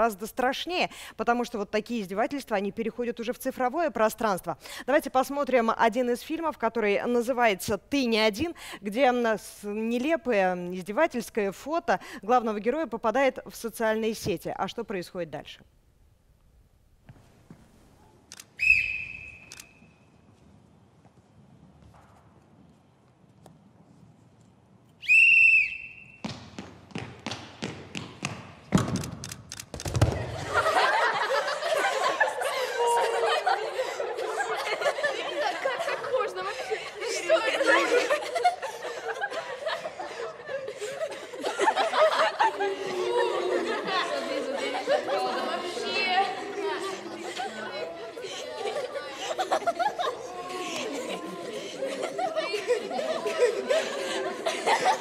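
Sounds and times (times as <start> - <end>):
sports whistle blast: 18.6 - 19.9, 25.0 - 26.3
children chattering: 30.6 - 55.0.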